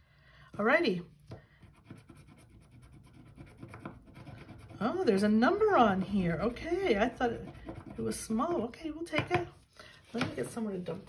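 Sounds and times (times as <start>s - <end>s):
scratching scratch card coating: 1.6s - 8.4s.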